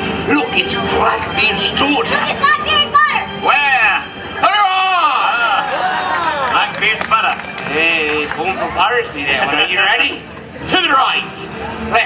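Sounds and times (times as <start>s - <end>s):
lively called-out voices: 0.2s - 12.0s.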